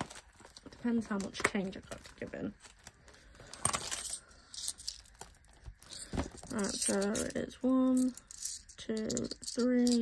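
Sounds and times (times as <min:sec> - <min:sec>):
coins clinking and jingling: 0:03.5 - 0:10.0.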